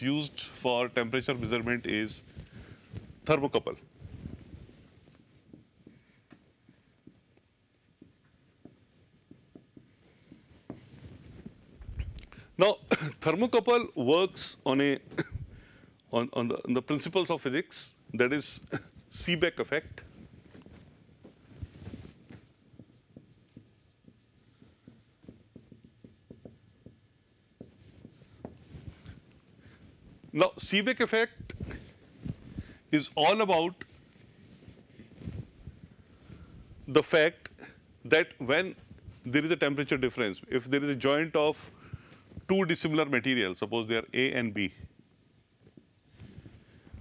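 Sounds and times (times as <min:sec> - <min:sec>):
marker pen writing on whiteboard: 0:00.4 - 0:15.0, 0:16.5 - 0:47.0.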